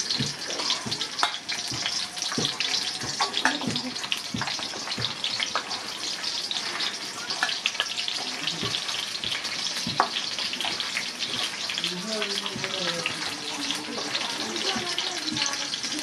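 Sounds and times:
onions sizzling in hot oil: 0.0s - 16.0s.

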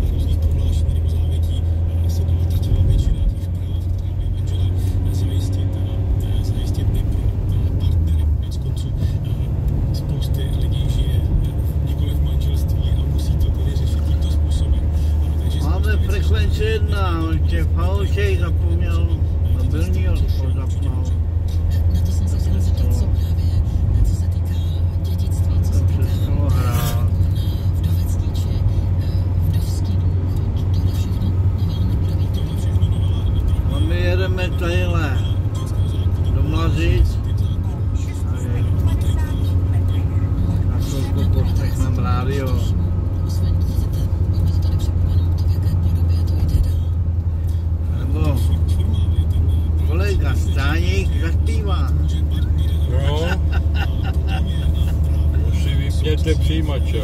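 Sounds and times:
car cabin rumble: 0.0s - 57.0s.

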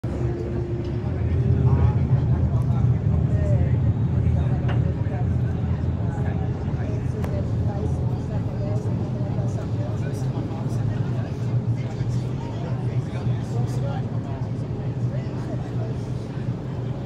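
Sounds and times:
people talking indistinctly: 0.1s - 17.0s.

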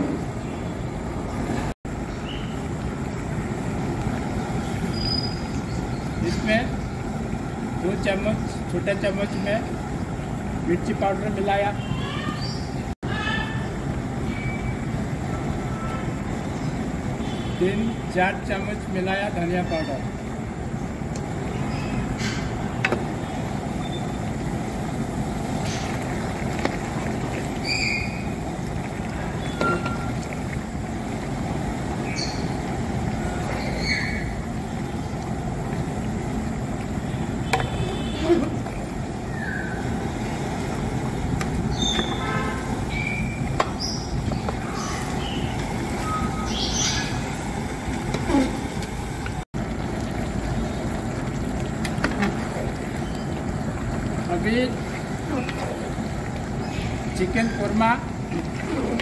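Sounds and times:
low outdoor rumble: 0.0s - 59.0s
bird chirps: 2.1s - 2.6s, 4.9s - 6.4s, 27.6s - 28.4s, 33.6s - 34.4s, 41.7s - 47.3s.

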